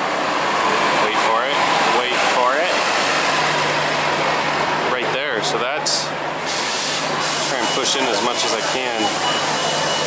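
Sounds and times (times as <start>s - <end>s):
bus driving past: 0.0s - 8.3s.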